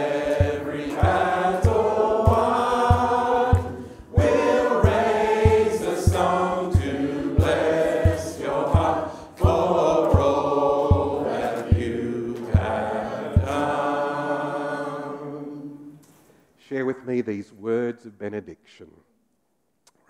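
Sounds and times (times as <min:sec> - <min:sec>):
steady low thump: 0:00.0 - 0:14.0
group singing a cappella: 0:00.0 - 0:16.2.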